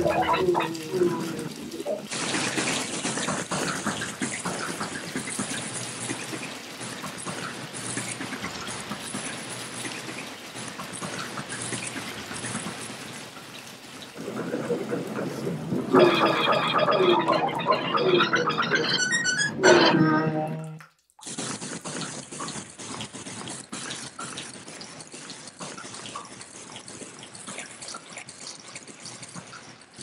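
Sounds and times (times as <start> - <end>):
person making mouth-music: 0.0 - 2.1, 19.6 - 20.9
tap water running into bath: 0.0 - 19.4.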